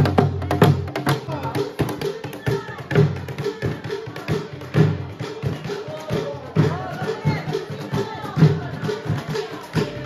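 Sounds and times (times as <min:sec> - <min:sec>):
hand drum beating a dance rhythm: 0:00.0 - 0:10.0.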